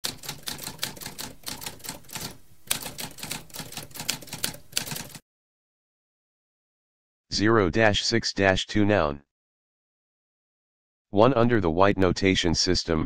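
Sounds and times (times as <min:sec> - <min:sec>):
typewriter key strikes: 0:00.0 - 0:05.2.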